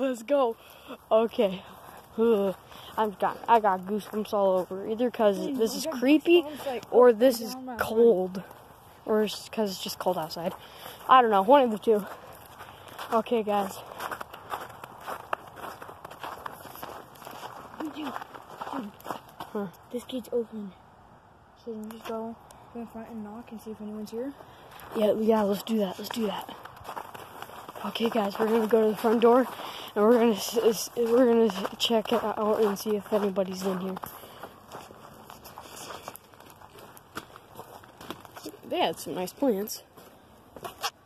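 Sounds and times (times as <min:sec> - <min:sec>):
soft footsteps outdoors: 0:00.0 - 0:41.0
light scuffs: 0:31.5 - 0:38.6, 0:39.9 - 0:41.0.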